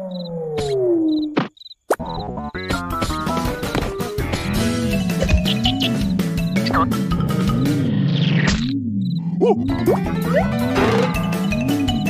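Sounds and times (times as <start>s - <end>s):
crickets chirping: 1.1s - 1.8s.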